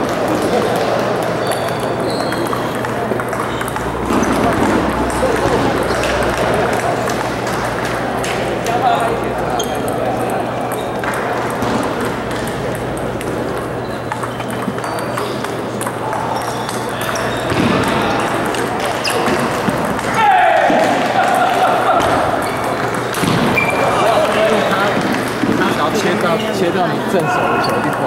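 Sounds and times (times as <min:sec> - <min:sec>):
ping-pong balls ticking: 0:00.0 - 0:26.8
hubbub of chatter: 0:00.0 - 0:28.0.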